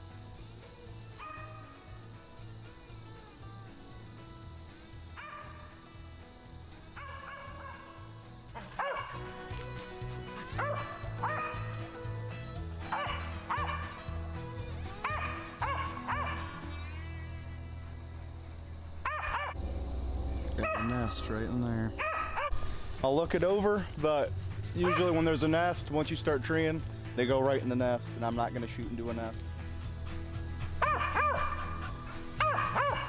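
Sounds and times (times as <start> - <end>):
background music with steady beat: 0.0 - 33.0
dog barking: 1.2 - 1.6, 5.2 - 5.7, 7.0 - 7.9, 8.6 - 9.3, 10.5 - 11.8, 12.9 - 14.0, 15.0 - 16.6, 19.0 - 19.6, 20.6 - 21.3, 21.9 - 22.6, 24.8 - 25.2, 30.8 - 33.0.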